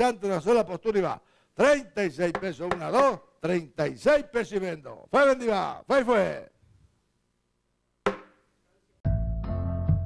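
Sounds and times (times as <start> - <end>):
sharp wooden knock: 2.3 - 3.0, 8.0 - 8.4.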